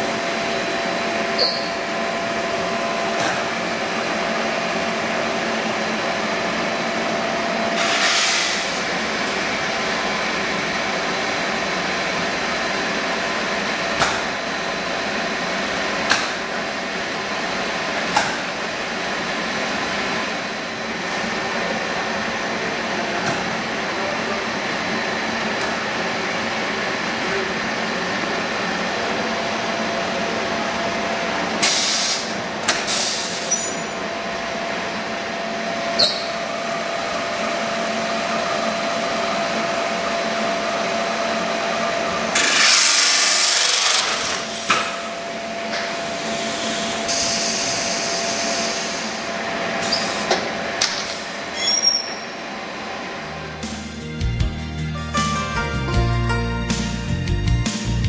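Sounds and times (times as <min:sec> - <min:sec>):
machinery humming and whining: 0:00.0 - 0:54.8.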